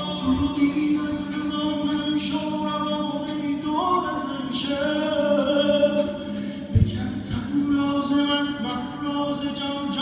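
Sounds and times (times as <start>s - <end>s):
person singing: 0.0s - 10.0s
pop band playing live: 0.0s - 10.0s.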